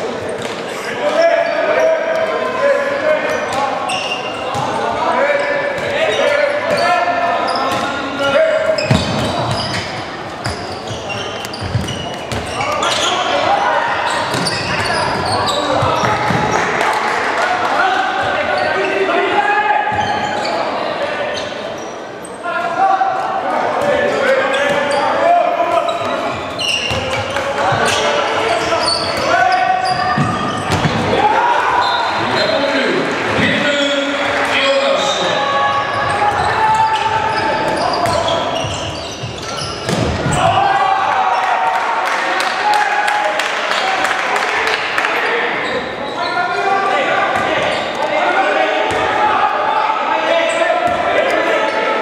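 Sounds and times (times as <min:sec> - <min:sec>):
ball bouncing on wooden court: 0:08.8 - 0:12.6, 0:14.3 - 0:16.6, 0:30.0 - 0:31.1
echoing shouting voices: 0:12.5 - 0:52.0.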